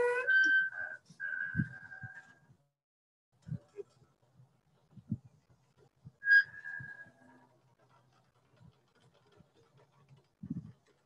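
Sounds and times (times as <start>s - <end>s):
high mechanical squeal: 0.0s - 2.4s, 6.2s - 7.4s.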